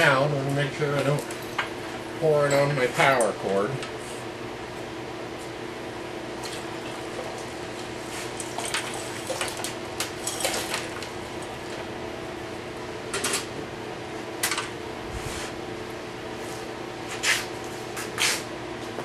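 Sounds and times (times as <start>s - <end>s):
steady hum: 0.0s - 19.0s.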